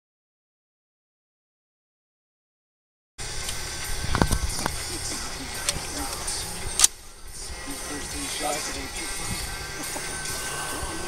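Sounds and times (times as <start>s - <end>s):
faint group voices: 4.1s - 11.0s.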